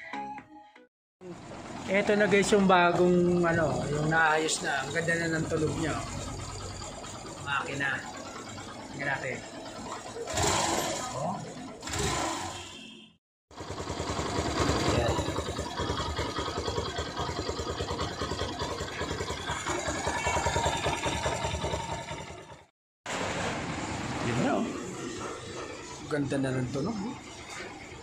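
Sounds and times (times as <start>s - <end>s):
motorcycle engine idling: 1.2s - 12.8s, 13.5s - 22.7s
loud clutch clatter: 1.4s - 12.7s, 13.5s - 22.7s.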